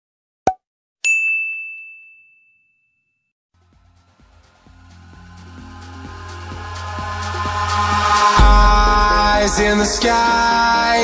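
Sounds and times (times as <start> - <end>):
bright ding: 1.1 - 3.1.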